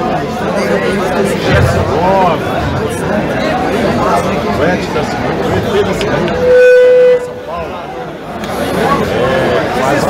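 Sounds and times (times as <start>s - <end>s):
crowd chatter: 0.0s - 10.0s
horn-like tone: 6.3s - 7.6s.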